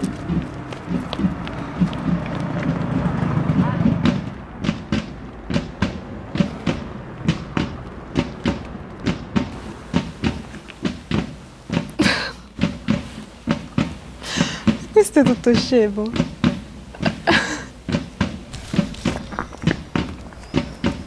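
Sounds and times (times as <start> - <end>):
footsteps on paved path: 0.0 - 21.0.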